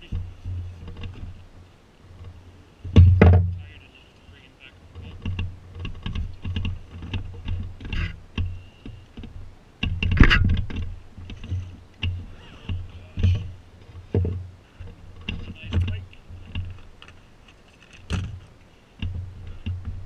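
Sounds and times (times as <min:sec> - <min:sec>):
low thuds against boat: 0:02.2 - 0:03.8, 0:04.9 - 0:17.0, 0:18.0 - 0:20.0
loud knock: 0:03.0 - 0:03.5.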